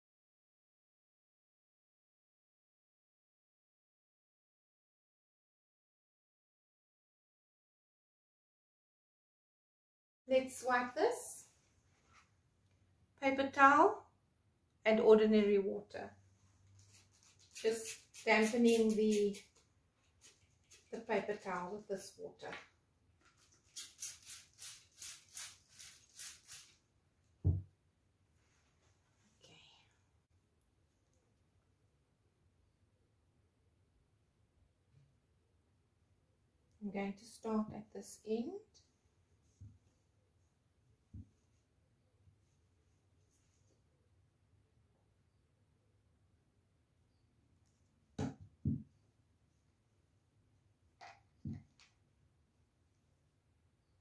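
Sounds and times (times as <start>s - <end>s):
spray bottle hissing squirts: 23.7s - 26.8s.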